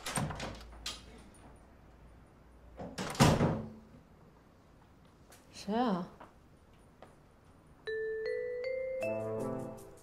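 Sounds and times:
door banging shut and latching: 0.0s - 0.9s, 2.8s - 3.8s.

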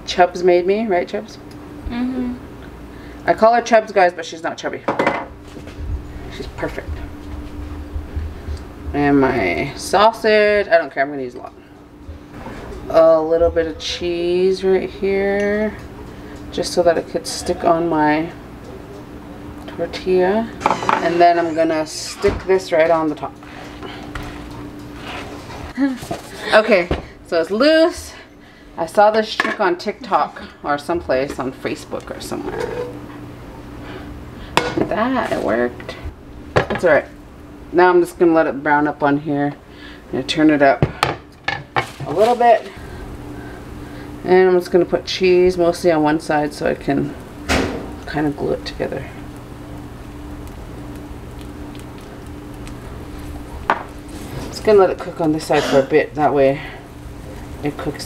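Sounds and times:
steady hum: 0.0s - 58.0s
short voiced sound: 20.6s - 22.5s
frying pan scraping on stove: 20.6s - 26.4s
faint sizzling crackles: 28.8s - 33.2s, 33.8s - 36.0s, 41.7s - 58.0s.

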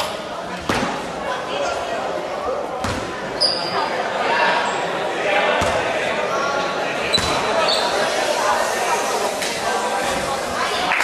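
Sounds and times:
echoing voices: 0.0s - 11.0s
basketball bouncing on court floor: 2.8s - 3.1s, 7.2s - 7.4s
high squeaks: 7.1s - 8.4s.

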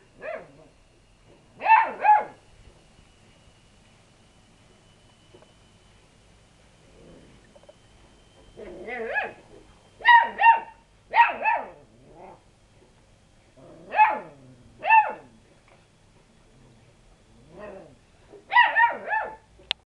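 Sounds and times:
puppy yapping barks: 1.6s - 2.4s, 9.0s - 9.4s, 10.0s - 11.8s, 13.9s - 15.3s, 18.5s - 19.5s.

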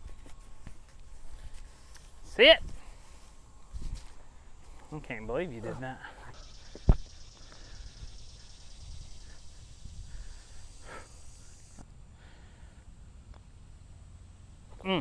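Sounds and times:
high-pitched insect buzzing: 6.3s - 11.8s.

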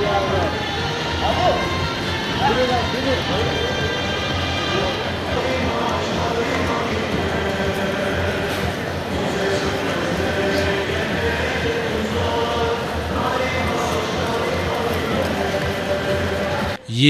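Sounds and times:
crowd voices din: 0.0s - 17.0s
music playing: 0.0s - 17.0s.

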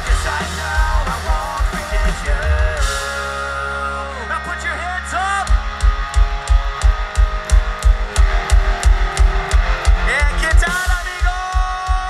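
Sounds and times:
drums kick and hi-hat beat: 0.0s - 3.9s, 5.4s - 12.0s
electric guitar and bass chord: 0.0s - 10.8s.

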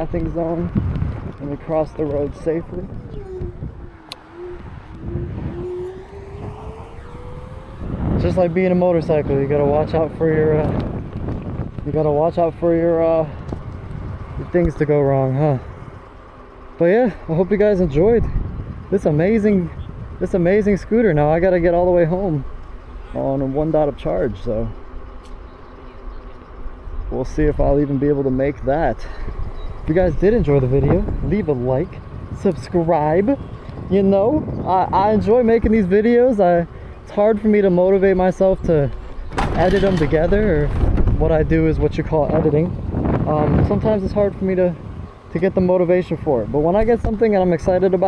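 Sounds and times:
electric scooter motor whining: 0.0s - 48.0s
wind: 0.0s - 48.0s.

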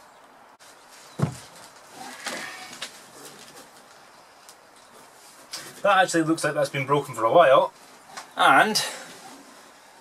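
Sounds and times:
wooden knock: 1.2s - 1.4s.

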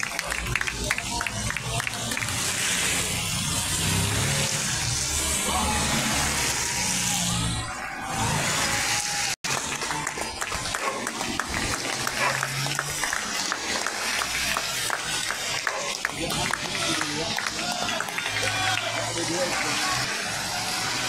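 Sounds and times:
people clapping: 0.0s - 21.0s
tyres hissing on wet road: 0.1s - 7.4s, 8.2s - 21.0s.

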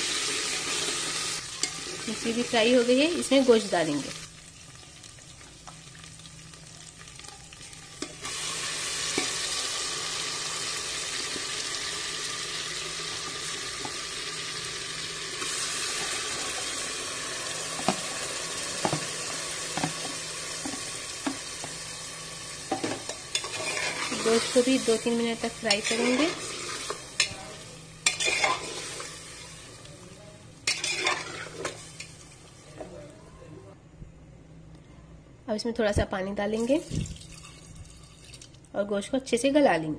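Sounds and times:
meat sizzling in hot oil: 0.0s - 29.9s, 30.6s - 32.5s
oil sizzling in pot: 0.0s - 32.9s.

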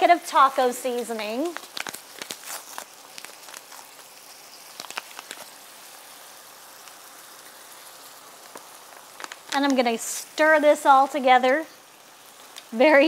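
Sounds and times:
food sizzling in a skillet: 0.0s - 13.0s.

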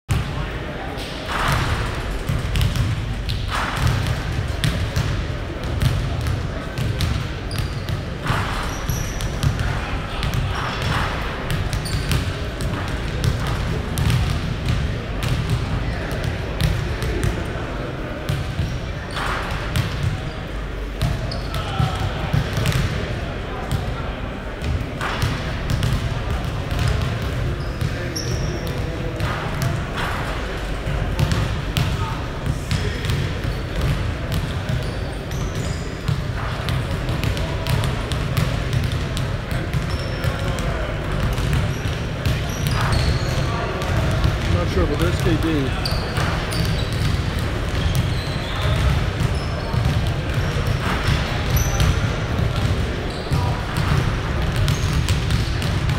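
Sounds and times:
basketballs bouncing on hardwood floor: 1.4s - 15.6s, 37.1s - 40.6s, 43.8s - 55.9s.

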